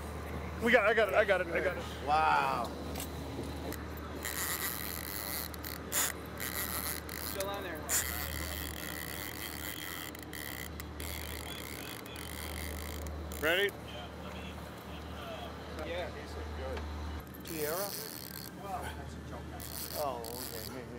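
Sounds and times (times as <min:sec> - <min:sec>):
boat engine humming: 0:00.0 - 0:20.9
sharp clicks of gear: 0:03.7 - 0:13.7.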